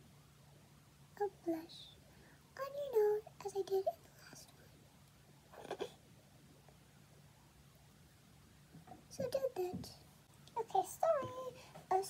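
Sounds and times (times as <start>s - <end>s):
girl speaking softly: 1.2s - 2.0s, 2.6s - 4.7s, 5.6s - 6.0s, 9.1s - 10.0s, 10.6s - 12.0s.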